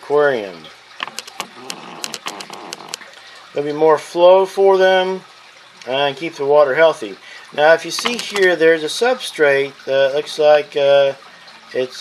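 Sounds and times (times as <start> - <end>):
water moving in aquarium: 0.0 - 12.0
sharp ticks: 1.0 - 3.0.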